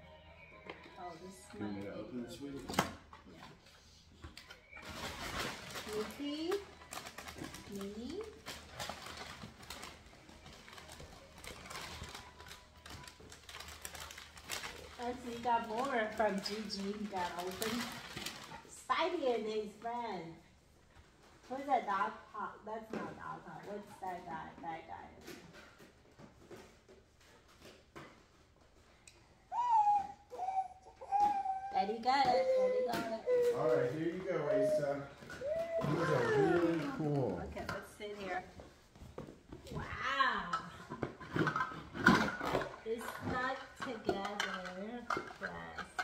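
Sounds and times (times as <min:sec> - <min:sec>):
wrapping paper crinkling: 0:04.7 - 0:18.8
child's high-pitched ooh: 0:29.5 - 0:31.8, 0:35.4 - 0:36.6.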